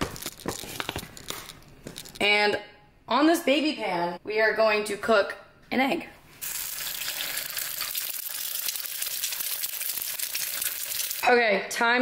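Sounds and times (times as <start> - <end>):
egg sizzling in hot oil: 6.4 - 11.2.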